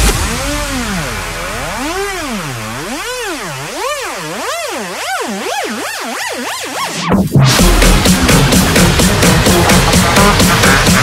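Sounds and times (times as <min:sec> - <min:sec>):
synthesizer tone swooping in pitch: 0:00.0 - 0:11.0.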